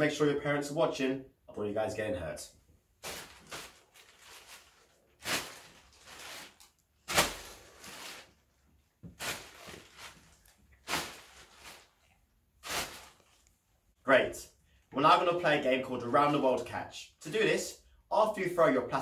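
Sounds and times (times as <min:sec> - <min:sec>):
plastic bag rustling: 0:03.0 - 0:13.5.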